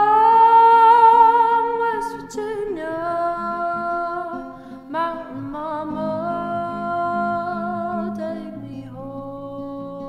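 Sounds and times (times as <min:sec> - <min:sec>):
acoustic guitar strumming: 0:00.0 - 0:10.0
woman singing: 0:00.0 - 0:10.0.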